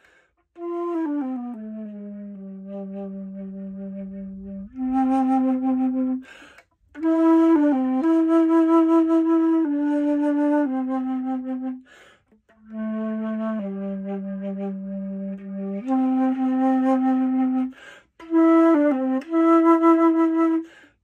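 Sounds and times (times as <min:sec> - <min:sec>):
alto flute long held notes: 0:00.0 - 0:21.0
player breathing: 0:06.2 - 0:06.7, 0:11.8 - 0:12.3, 0:17.8 - 0:18.2.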